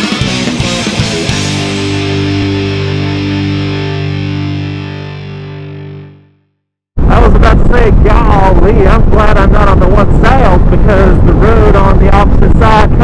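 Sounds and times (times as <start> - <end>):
distorted electric guitar chord: 0.0 - 6.6.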